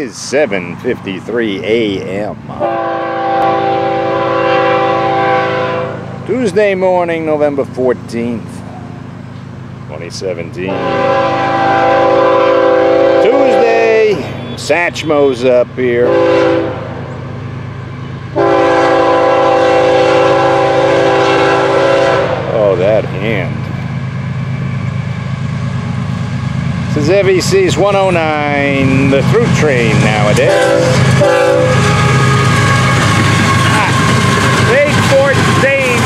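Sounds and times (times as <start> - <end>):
diesel locomotives rumbling: 0.0 - 36.0
train air horn: 2.5 - 6.1, 10.6 - 14.0, 16.0 - 17.0, 18.4 - 22.7, 30.1 - 36.0
steady high tones: 22.5 - 36.0.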